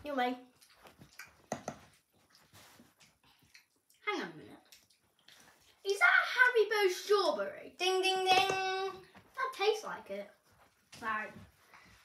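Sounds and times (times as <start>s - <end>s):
child chewing food: 0.4s - 5.8s
wet mouth clicks: 0.6s - 2.4s, 3.0s - 4.0s, 4.6s - 5.8s.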